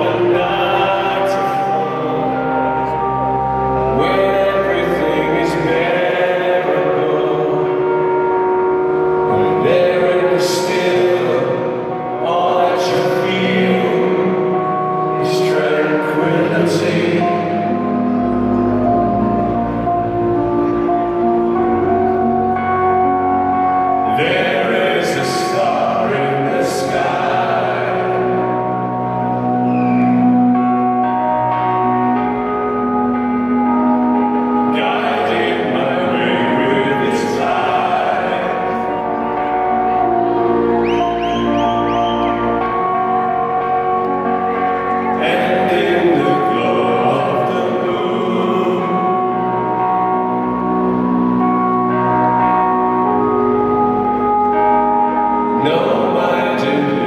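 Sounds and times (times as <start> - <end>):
bell-like synthesizer chord: 0.0 - 57.0
person singing: 0.0 - 57.0.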